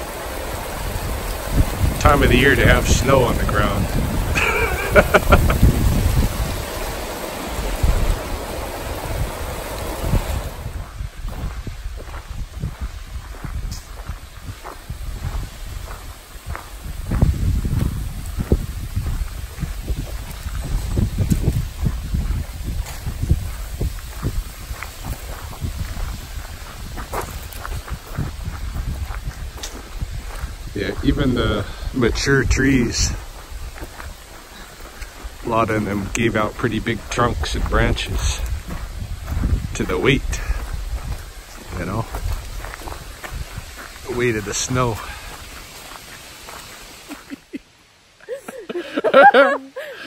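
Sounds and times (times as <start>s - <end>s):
river rapids rushing: 0.0s - 10.8s
wind buffeting microphone: 0.0s - 47.3s
footfalls on dirt trail: 0.0s - 47.5s.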